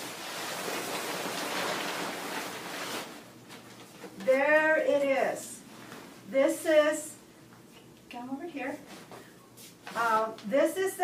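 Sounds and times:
cloth sheet rustling: 0.0s - 6.3s.

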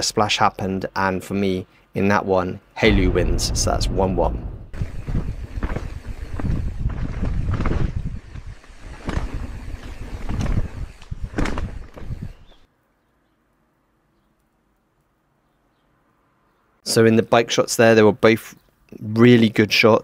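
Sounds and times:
bike rattling on dirt trail: 4.8s - 12.6s.

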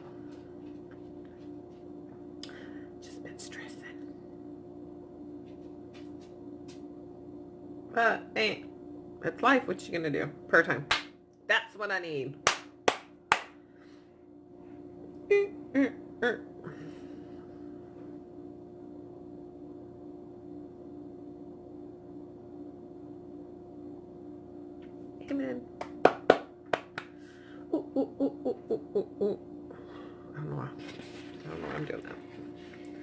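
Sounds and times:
steady low hum: 0.0s - 33.0s
sharp hand claps: 10.9s - 11.1s, 12.4s - 13.6s, 25.8s - 27.1s
woman laughing: 15.3s - 17.0s, 27.6s - 29.4s.

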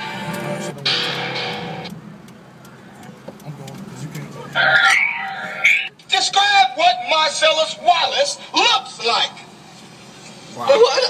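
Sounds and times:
car engine and road hum: 0.0s - 11.0s
car stereo sound: 0.0s - 11.0s.

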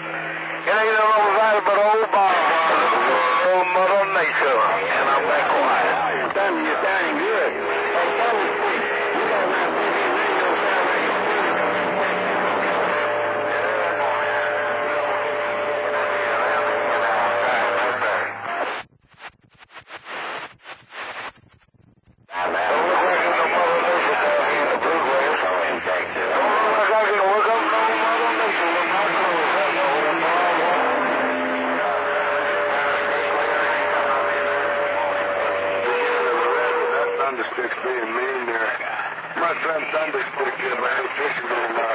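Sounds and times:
radio static: 0.0s - 41.9s
garbled radio voices: 0.6s - 21.6s, 22.2s - 41.9s.

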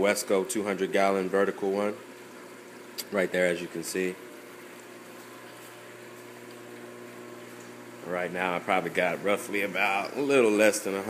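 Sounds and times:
aquarium pump humming: 0.0s - 11.0s.

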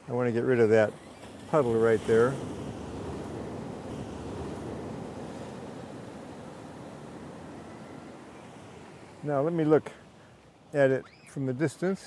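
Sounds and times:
ocean surf on rocky shore: 0.0s - 12.0s.

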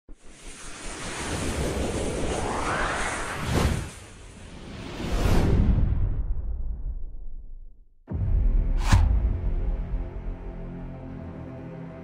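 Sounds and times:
whoosh with low rumble: 0.1s - 7.5s.

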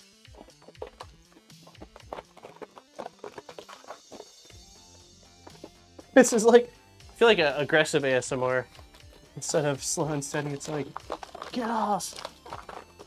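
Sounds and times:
quiet background music: 0.0s - 13.0s
paper crackling and ripping: 10.4s - 13.0s.

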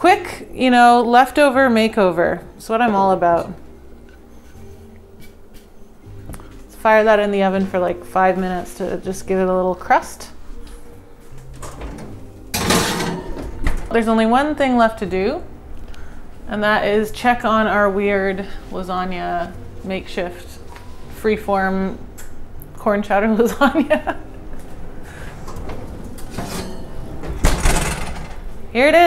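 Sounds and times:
oven door opening: 11.4s - 14.1s, 25.1s - 28.6s
skillet scraping into oven: 11.5s - 13.6s, 25.0s - 28.4s.

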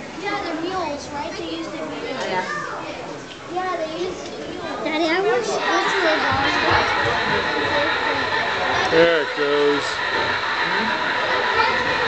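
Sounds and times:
indistinct chatter of people: 0.0s - 12.0s
steady hum: 5.1s - 12.0s.

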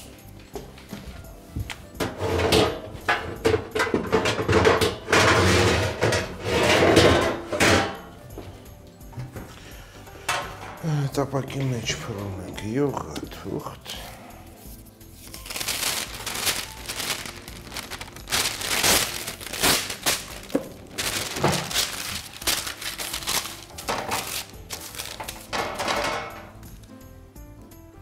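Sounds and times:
soft background music: 0.0s - 28.0s
parchment paper crinkling: 15.2s - 25.6s.

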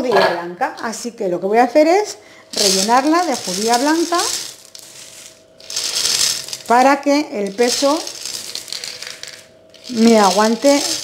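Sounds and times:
dried beans pouring: 2.5s - 11.0s.

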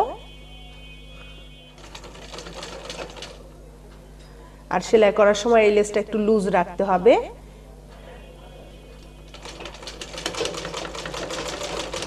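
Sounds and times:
sewing machine stitching: 1.8s - 3.4s, 9.3s - 12.0s.

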